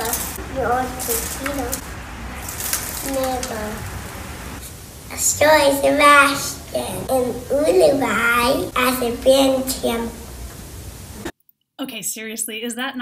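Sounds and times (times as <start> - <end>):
child speaking: 0.0 - 1.8, 2.9 - 3.9, 5.1 - 10.2.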